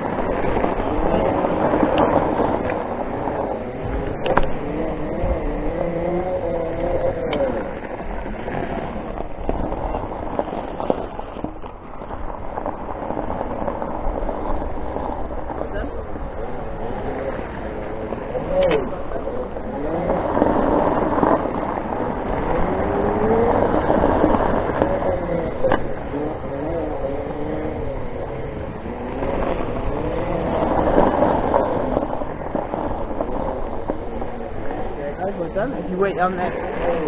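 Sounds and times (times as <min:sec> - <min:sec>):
tyres rolling on gravel: 0:00.0 - 0:37.0
wind noise: 0:00.0 - 0:37.0.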